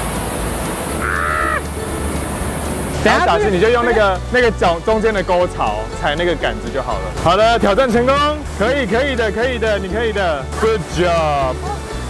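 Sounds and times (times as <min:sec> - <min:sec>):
steady rushing noise: 0:00.0 - 0:04.2
man yelling: 0:03.1 - 0:04.1.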